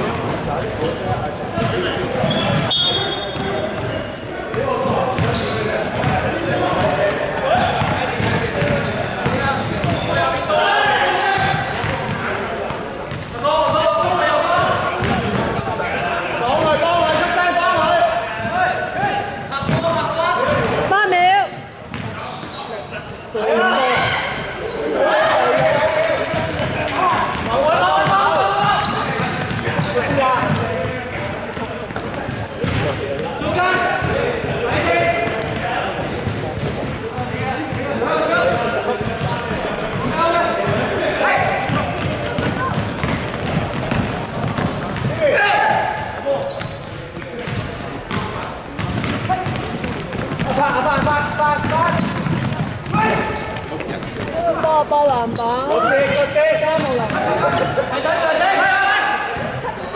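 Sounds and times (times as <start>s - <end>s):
ball bouncing on wooden court: 3.3s - 7.0s, 7.6s - 10.2s, 11.4s - 14.0s, 14.6s - 15.8s, 21.8s - 22.6s, 25.5s - 33.3s, 34.0s - 37.9s, 41.6s - 57.6s, 59.4s - 59.6s.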